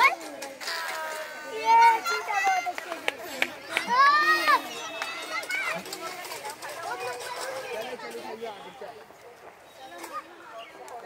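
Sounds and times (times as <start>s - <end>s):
children's voices: 0.0s - 8.7s.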